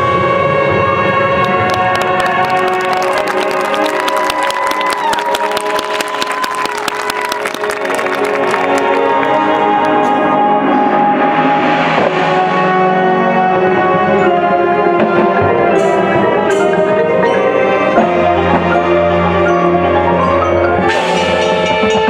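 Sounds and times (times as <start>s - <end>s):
marching band playing: 0.0s - 22.0s
sharp percussion strikes: 20.8s - 22.0s.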